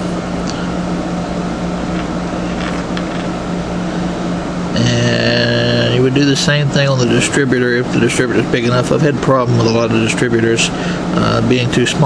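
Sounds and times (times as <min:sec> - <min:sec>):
low hum: 0:00.0 - 0:12.0
man speaking: 0:04.8 - 0:12.0.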